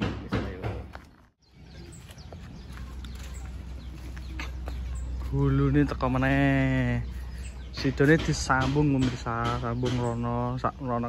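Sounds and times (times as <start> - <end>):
bird chirps: 1.0 - 11.0.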